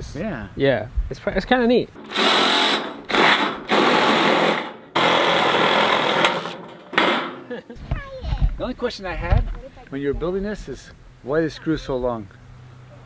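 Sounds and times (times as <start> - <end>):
drill driving screws into metal: 2.0 - 7.4.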